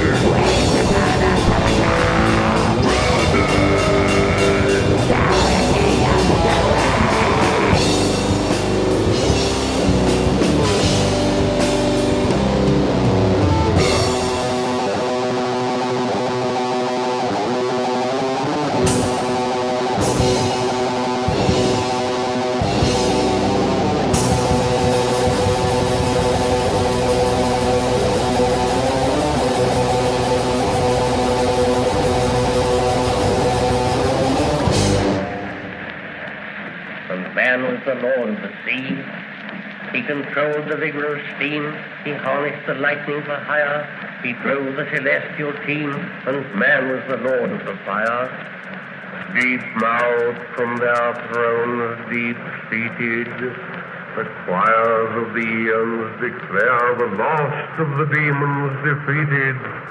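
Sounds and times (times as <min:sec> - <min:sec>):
drum kit: 0:00.0 - 0:37.8, 0:43.7 - 0:59.9
distorted electric guitars: 0:00.0 - 0:59.9.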